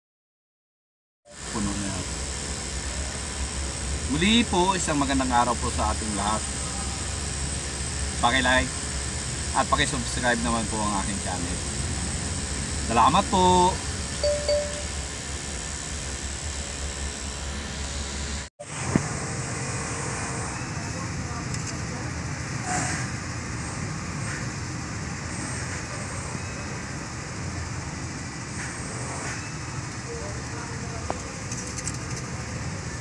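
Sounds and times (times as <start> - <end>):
vehicle engine idling: 1.5 - 15.2, 19.1 - 33.0.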